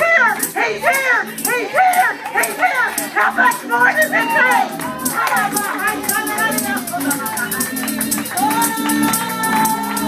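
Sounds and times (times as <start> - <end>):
woman shouting sing-song syllables: 0.0 - 7.3, 8.3 - 10.0.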